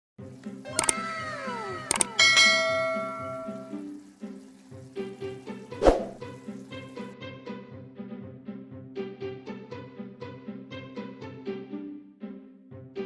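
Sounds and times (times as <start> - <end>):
falling-pitch sound effects: 0.7 - 3.9
ringing chime: 0.7 - 3.9.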